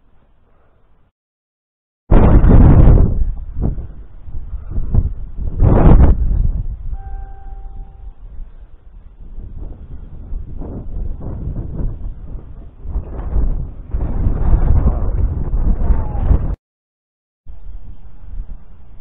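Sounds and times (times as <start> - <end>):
wind buffeting microphone: 2.1 - 16.6
steady pitched tone: 6.9 - 8.4.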